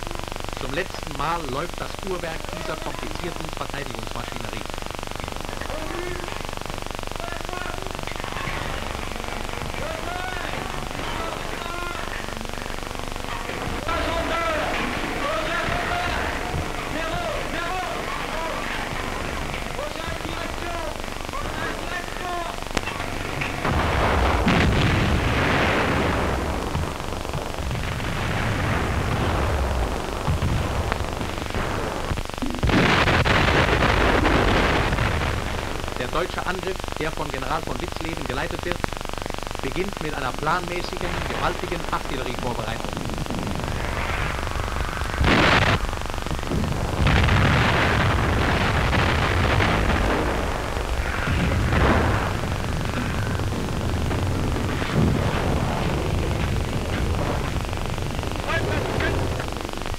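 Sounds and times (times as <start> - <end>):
film soundtrack hiss and crackle: 0.0 - 59.9
rolling rumble: 43.1 - 59.9.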